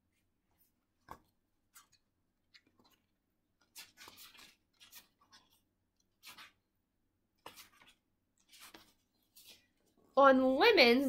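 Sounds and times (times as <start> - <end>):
book page turning: 0.5 - 6.6, 7.4 - 9.9.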